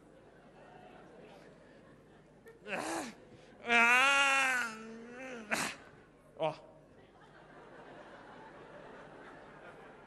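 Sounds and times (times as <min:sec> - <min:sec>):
man crying out in strain: 0:02.7 - 0:05.8
man grunting: 0:02.7 - 0:05.8.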